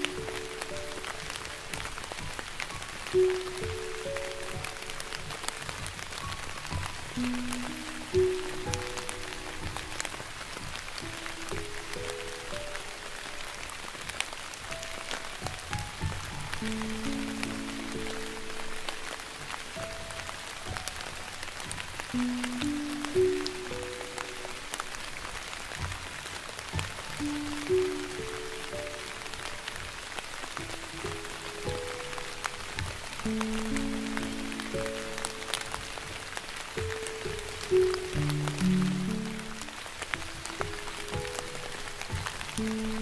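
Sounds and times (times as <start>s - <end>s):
rain falling: 0.0s - 43.0s
slow soft piano music: 0.0s - 43.0s.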